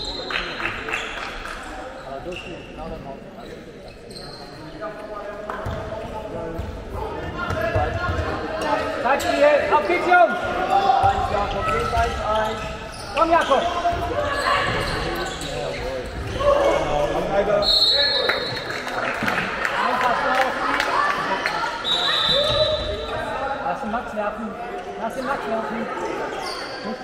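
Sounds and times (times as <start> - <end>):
referee's whistle: 17.6 - 18.6, 21.8 - 23.1.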